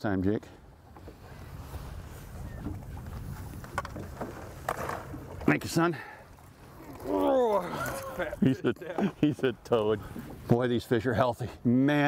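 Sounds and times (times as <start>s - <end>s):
boat engine rumble: 0.6s - 10.6s.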